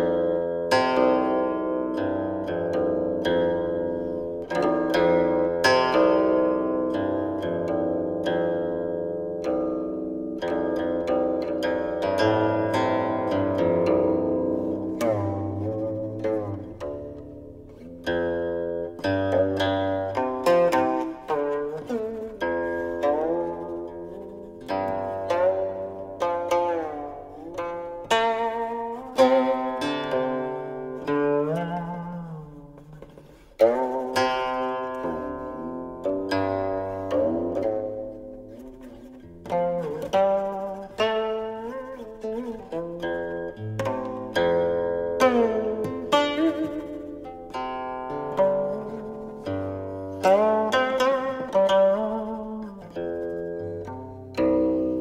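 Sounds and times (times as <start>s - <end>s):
zither plucked notes sliding: 0.0s - 55.0s.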